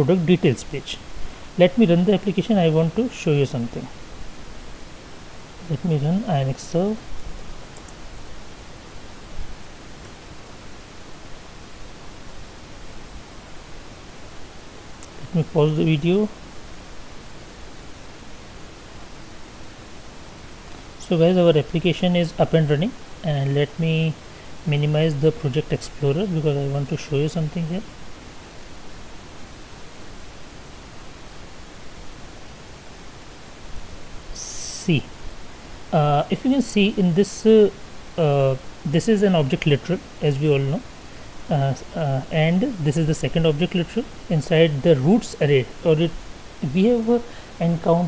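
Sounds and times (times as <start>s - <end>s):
microphone hiss: 0.0s - 48.0s
faint click: 7.7s - 8.0s.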